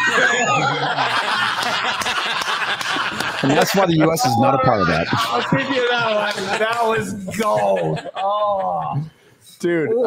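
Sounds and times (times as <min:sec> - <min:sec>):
men laughing loudly: 0:00.0 - 0:09.1.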